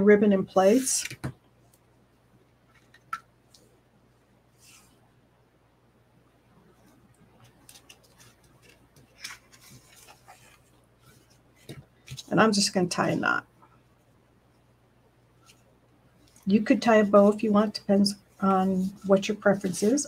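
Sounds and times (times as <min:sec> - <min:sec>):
ribbon and paper rustling: 0:07.4 - 0:12.4, 0:17.1 - 0:20.0.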